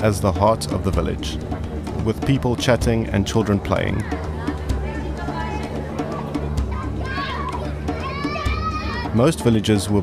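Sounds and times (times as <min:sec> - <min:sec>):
children shouting while playing: 0:06.6 - 0:09.2.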